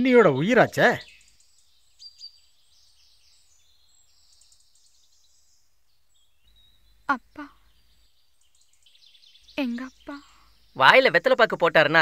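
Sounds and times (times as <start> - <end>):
background hiss: 0.0 - 12.0
faint high bird chirps: 0.0 - 12.0.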